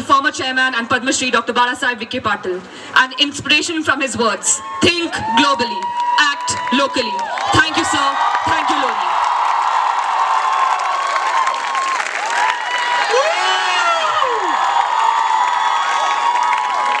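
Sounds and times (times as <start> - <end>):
audience cheering and applauding: 4.6 - 17.0.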